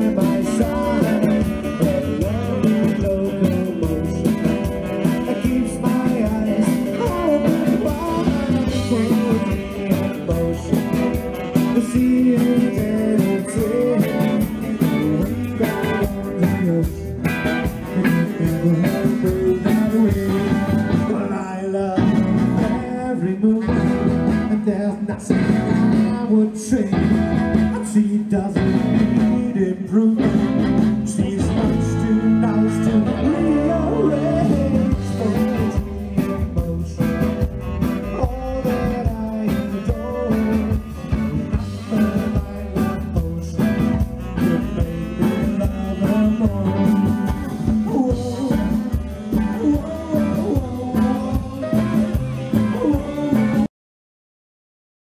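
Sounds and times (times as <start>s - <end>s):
saxophone: 0.0s - 26.0s, 31.5s - 53.7s
live rock and roll band: 0.0s - 53.7s
person singing: 0.0s - 53.7s.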